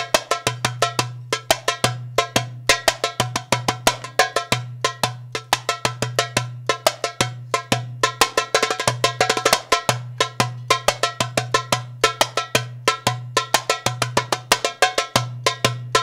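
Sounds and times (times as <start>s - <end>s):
goblet drum rhythm: 0.0s - 16.0s.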